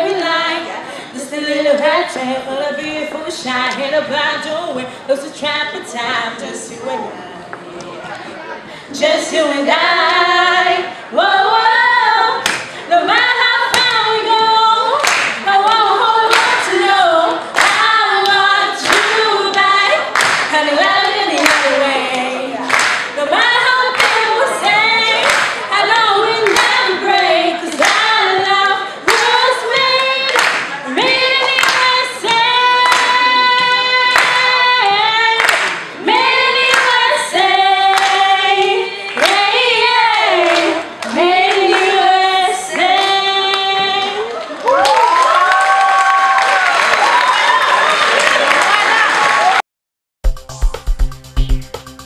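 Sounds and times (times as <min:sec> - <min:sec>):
women singing pop song: 0:00.0 - 0:07.2, 0:08.8 - 0:44.8
hands clapping a beat: 0:12.4 - 0:12.8, 0:15.0 - 0:15.4, 0:16.3 - 0:16.6, 0:17.6 - 0:21.8, 0:22.6 - 0:23.2, 0:23.9 - 0:24.4, 0:25.2 - 0:25.7, 0:26.4 - 0:26.8, 0:27.7 - 0:28.2, 0:29.1 - 0:34.6, 0:35.4 - 0:36.0, 0:36.7 - 0:37.1, 0:37.8 - 0:42.0.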